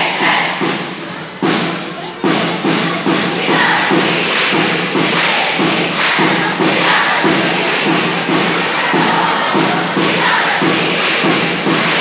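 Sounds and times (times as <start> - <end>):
students chanting in unison: 0.0 - 1.6, 2.2 - 12.0
beat of thumps: 0.0 - 12.0.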